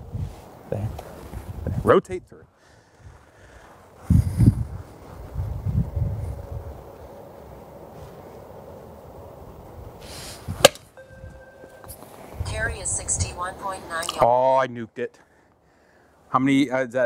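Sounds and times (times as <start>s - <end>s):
golf club striking ball: 10.6s - 12.0s.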